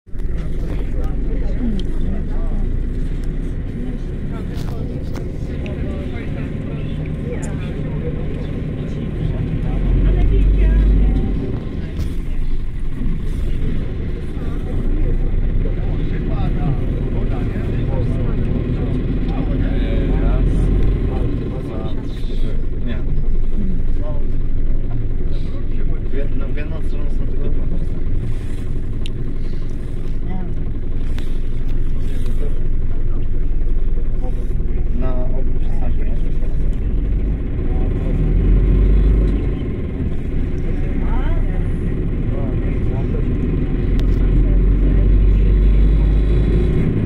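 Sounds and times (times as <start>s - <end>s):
bus diesel engine rumble: 0.0s - 47.0s.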